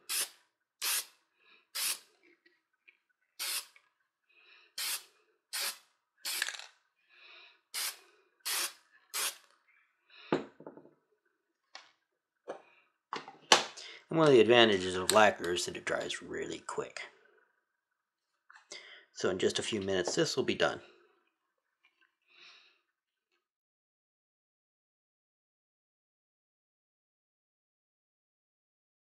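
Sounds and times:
aerosol spray can hissing: 0.0 - 1.2, 1.8 - 2.1, 3.4 - 3.8, 4.8 - 6.7, 7.8 - 9.5
knock: 10.4 - 10.9.

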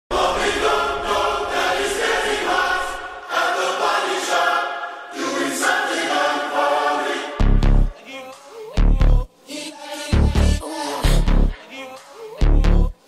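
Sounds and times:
layered choir-like vocal harmony: 0.1 - 13.0.

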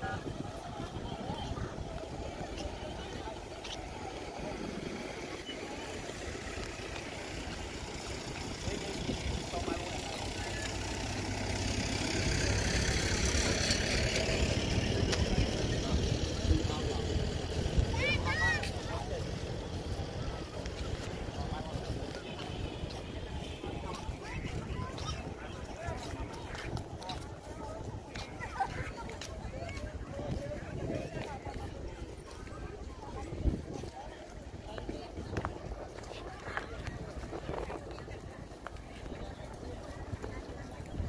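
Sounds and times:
people's voices: 0.0 - 41.0
traffic: 0.0 - 41.0
vehicle passing: 3.0 - 27.2.

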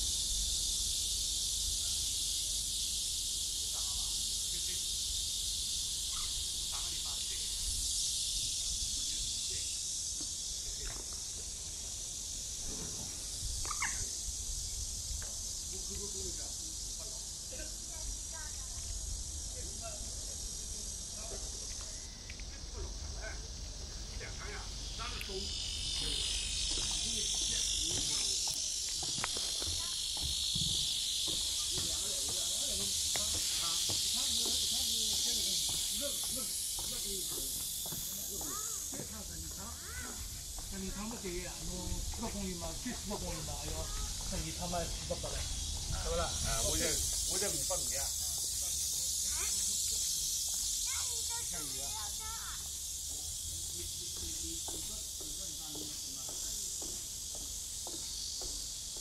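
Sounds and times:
cicadas buzzing: 0.0 - 59.0.

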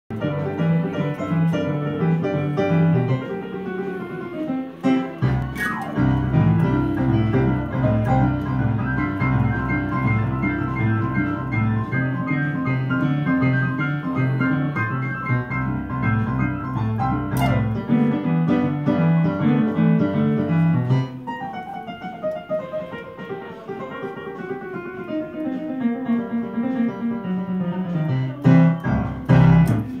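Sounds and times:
ragtime piano piece: 0.1 - 30.0.

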